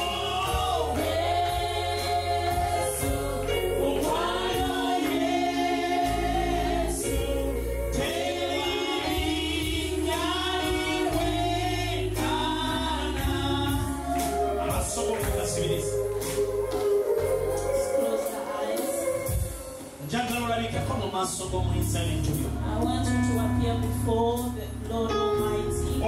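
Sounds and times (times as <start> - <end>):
low sustained bass notes: 0.0 - 17.9, 20.6 - 26.0
group of voices singing: 0.0 - 20.1.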